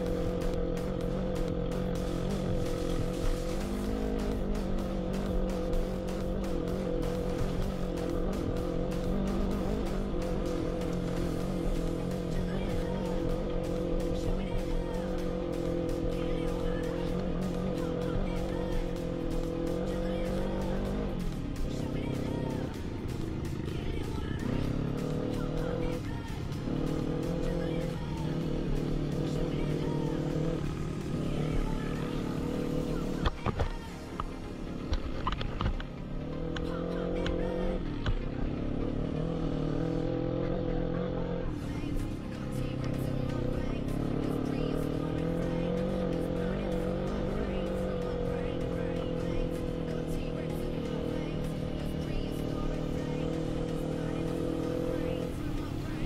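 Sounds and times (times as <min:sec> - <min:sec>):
music: 0:00.0 - 0:56.0
quad bike engine revving: 0:00.0 - 0:56.0.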